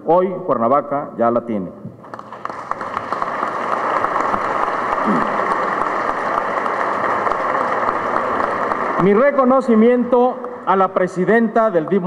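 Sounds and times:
audience applauding: 2.0s - 12.0s.

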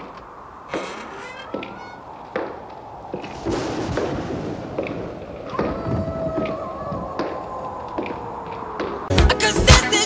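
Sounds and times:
thumps and knocks: 0.7s - 3.3s.

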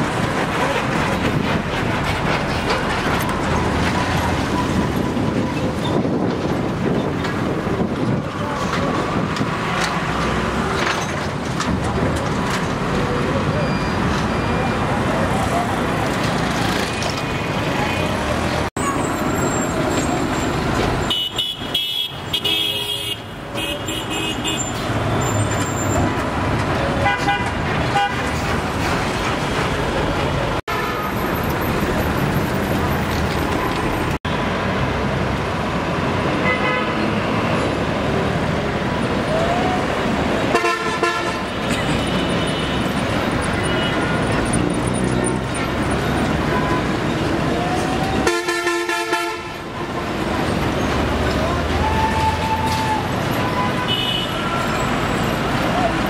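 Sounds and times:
busy road traffic: 0.0s - 56.0s
vehicle horn toots: 48.2s - 49.6s.

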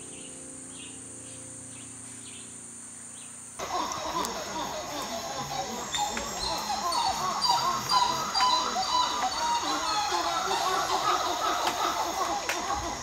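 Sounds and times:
birds chattering: 0.0s - 13.0s
insects droning: 0.0s - 13.0s.

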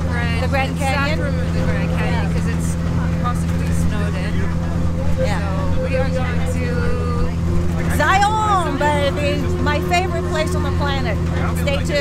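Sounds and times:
road noise: 0.0s - 12.0s
truck engine drone: 0.0s - 12.0s.

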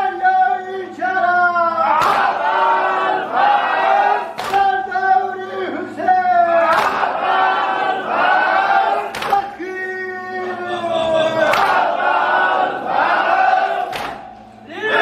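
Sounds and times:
men chanting a lament: 0.0s - 15.0s
men striking their chests: 1.9s - 2.6s, 6.6s - 7.4s, 8.6s - 9.6s, 13.0s - 14.6s.

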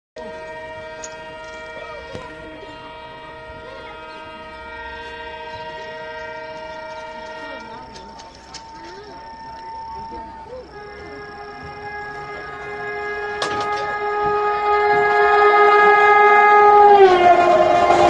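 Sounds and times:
locomotive air horn: 0.2s - 18.0s
train rumbling on rails: 0.2s - 18.0s.

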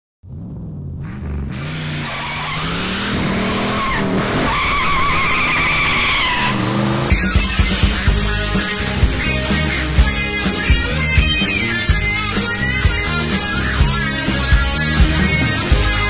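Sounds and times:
car engine revving: 0.2s - 16.0s
tyres squealing: 1.6s - 8.1s
rock band with drums: 7.1s - 16.0s.

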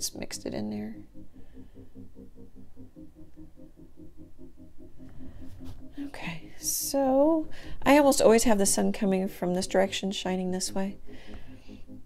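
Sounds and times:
pulsing low hum: 0.0s - 12.0s.

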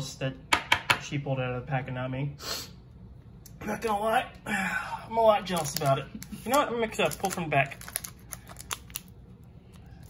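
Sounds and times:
foil pack rustling and clicking: 5.4s - 9.1s.

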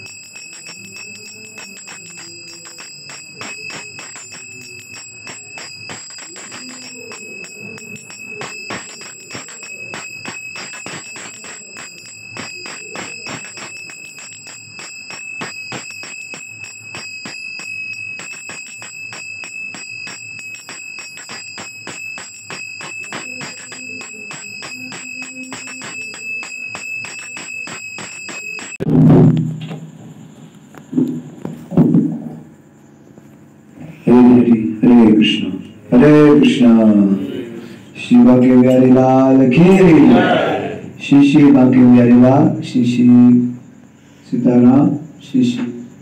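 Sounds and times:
hand bell ringing: 0.0s - 28.8s.

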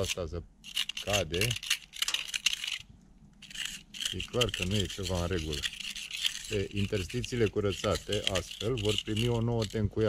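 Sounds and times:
grit crackling loose: 0.0s - 10.0s
knife scraping mortar: 0.0s - 10.0s.

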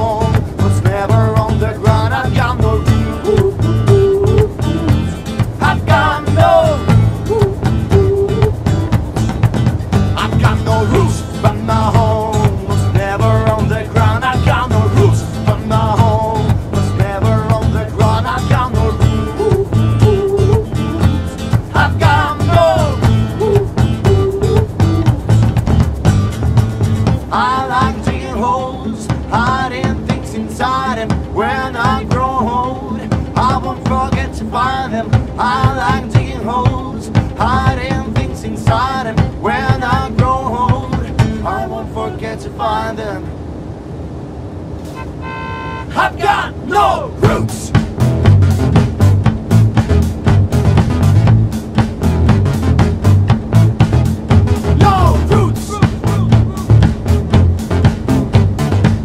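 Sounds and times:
man singing: 0.0s - 8.8s, 10.2s - 25.0s, 27.2s - 43.3s, 45.9s - 47.8s, 54.7s - 57.0s
drums: 0.0s - 28.4s, 29.0s - 32.4s, 33.0s - 34.4s, 35.0s - 41.5s, 47.2s - 59.0s
keyboard: 0.0s - 30.2s
bass guitar: 0.0s - 41.6s, 47.2s - 59.0s.

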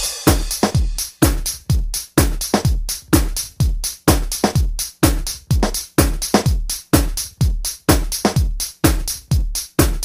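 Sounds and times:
crisp hi-hats: 0.0s - 10.0s
electronic kick drum: 0.0s - 10.0s.

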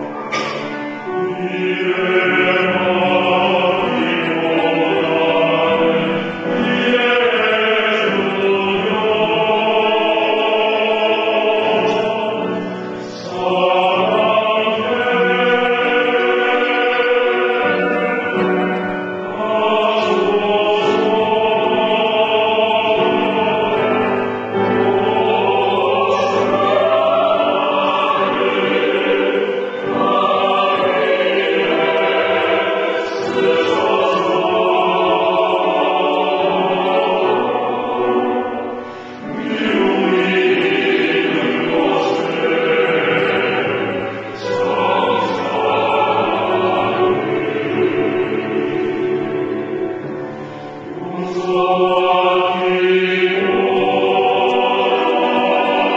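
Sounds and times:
choir singing sustained chords: 0.0s - 55.9s.

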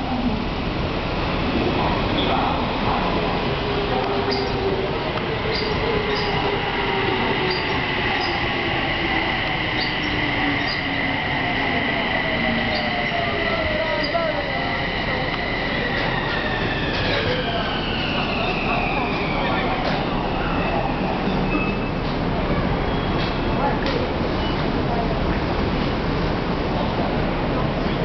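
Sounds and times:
train brakes squealing: 4.2s - 4.8s, 5.4s - 24.8s.

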